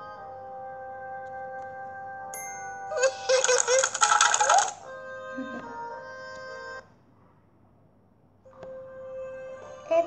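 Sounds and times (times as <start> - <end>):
gentle background music: 0.0 - 7.2, 8.3 - 10.0
twinkling chime flourish: 2.4 - 3.1.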